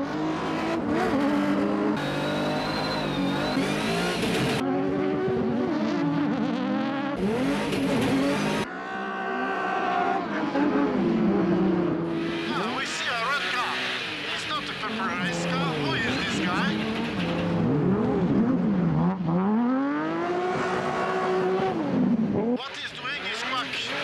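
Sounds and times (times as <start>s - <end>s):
race car engines revving: 0.0s - 24.0s.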